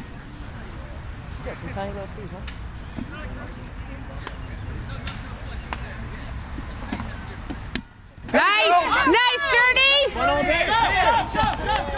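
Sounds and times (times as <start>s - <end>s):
low outdoor noise: 0.0s - 11.9s
players shouting and cheering: 8.3s - 11.9s.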